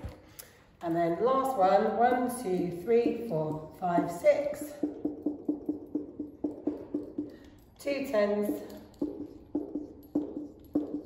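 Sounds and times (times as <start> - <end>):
marker tapping on a whiteboard: 3.9 - 11.0.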